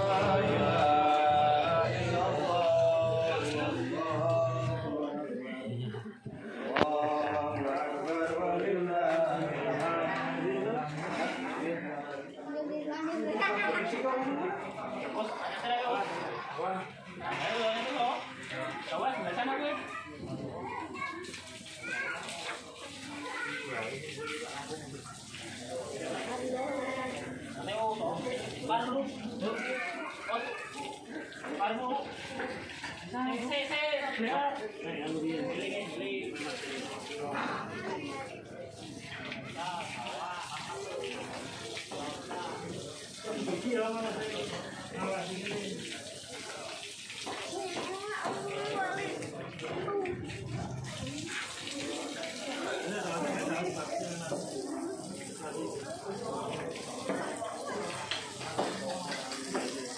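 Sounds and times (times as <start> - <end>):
people talking: 0.0 - 59.9
water splashing and running: 5.7 - 12.4, 13.1 - 59.9.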